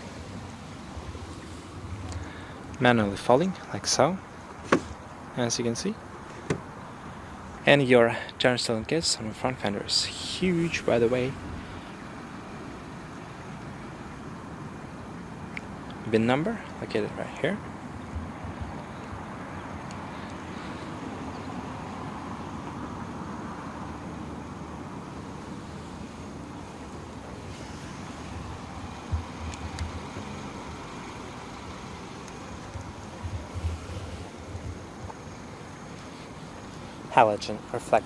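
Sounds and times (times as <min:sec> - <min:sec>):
outdoor background noise: 0:00.0 - 0:38.0.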